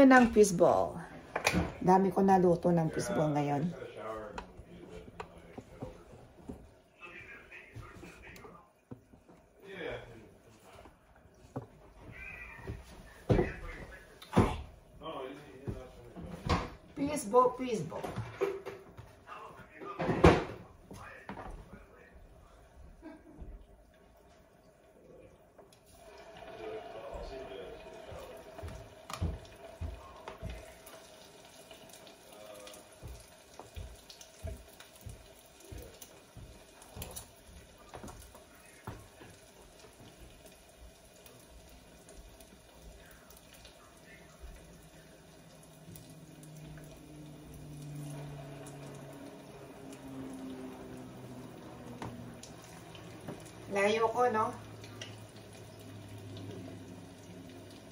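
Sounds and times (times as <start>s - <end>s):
simmering water: 0.0s - 57.9s.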